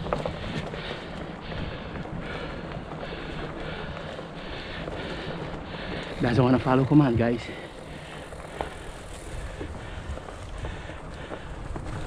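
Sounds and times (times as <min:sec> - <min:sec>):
bike tyres rolling over leaves: 0:00.0 - 0:12.0.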